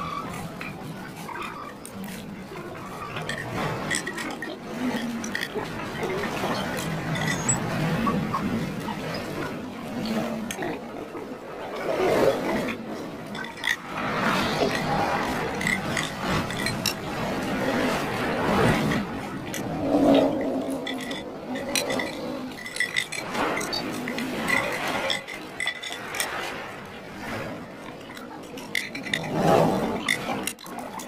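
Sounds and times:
cutlery clinking on ceramic bowls: 20.8s - 26.4s.

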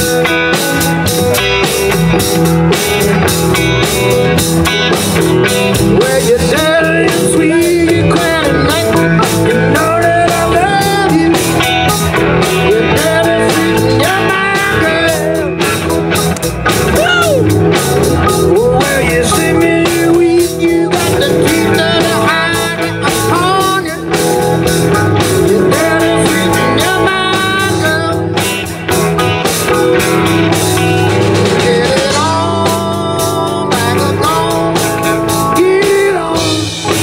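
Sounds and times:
live blues-rock band playing: 0.0s - 37.0s.

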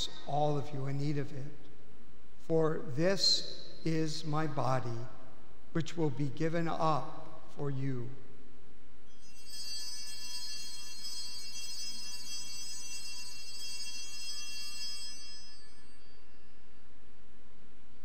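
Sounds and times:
altar bells ringing: 9.2s - 16.4s.

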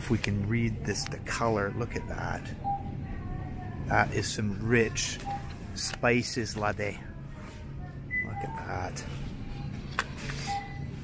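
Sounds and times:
faint background music: 0.0s - 11.0s
steady low hum: 0.0s - 11.0s.

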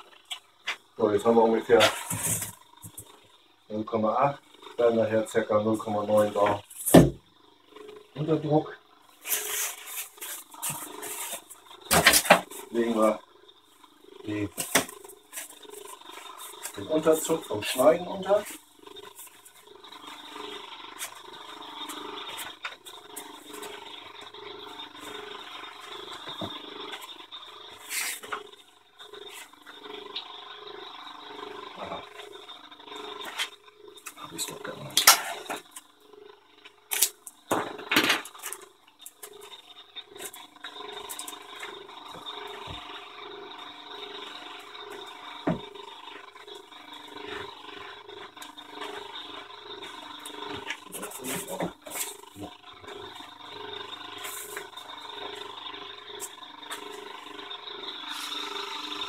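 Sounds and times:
compressor pump pulsing: 0.0s - 59.0s.

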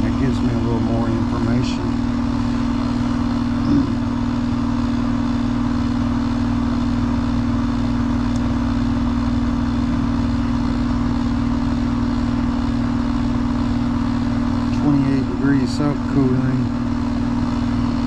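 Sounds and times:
heat pump humming: 0.0s - 18.0s.

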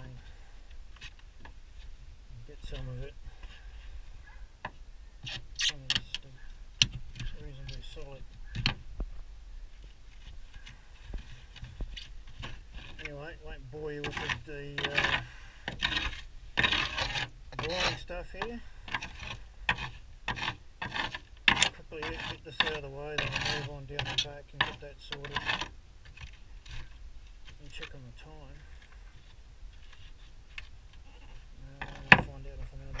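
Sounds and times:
knocks and scrapes of debris: 9.8s - 33.0s.

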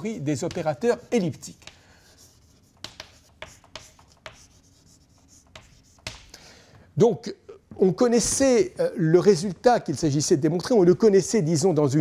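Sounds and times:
chalk tapping on blackboard: 0.3s - 6.4s
chalk scratching on blackboard: 0.4s - 6.3s.

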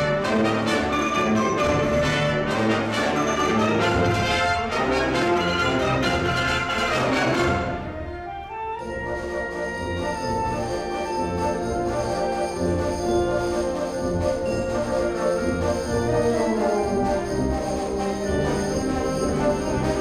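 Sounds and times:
wind band playing: 0.0s - 20.0s.

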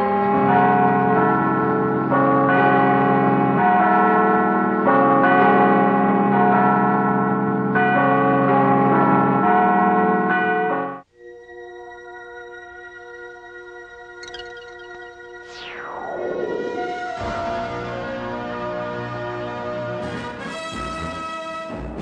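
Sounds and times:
church bells pealing: 0.0s - 11.1s.

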